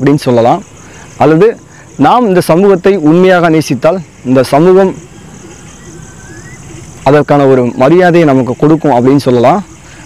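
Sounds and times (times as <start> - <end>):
outdoor background noise: 0.0 - 10.0
faint short rising whistle: 5.6 - 6.8.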